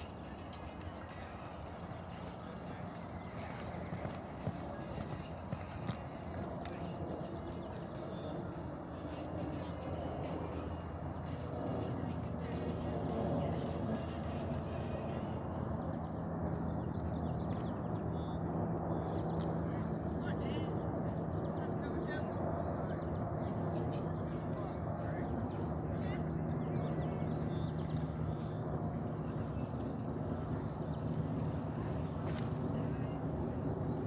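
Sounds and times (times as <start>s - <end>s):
indistinct voices: 0.0s - 15.6s
music: 0.0s - 16.8s
horse hoofbeats on sand: 1.2s - 7.7s.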